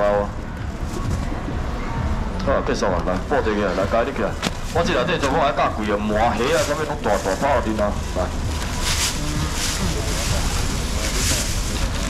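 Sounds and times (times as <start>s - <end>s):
faint market chatter: 0.0s - 12.0s
plastic bags rustling: 3.8s - 12.0s.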